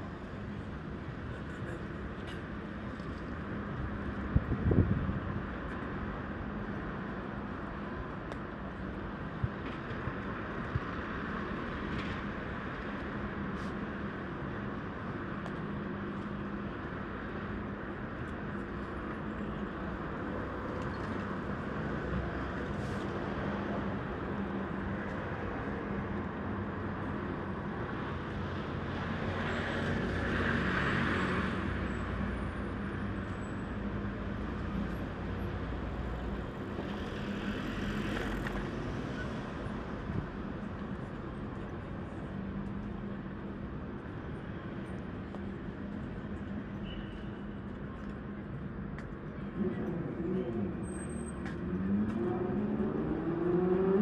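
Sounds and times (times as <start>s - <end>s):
city road traffic: 0.0s - 54.0s.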